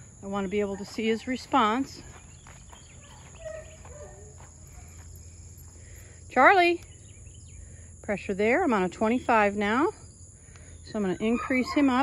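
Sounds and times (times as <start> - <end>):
crickets droning: 0.0 - 12.0.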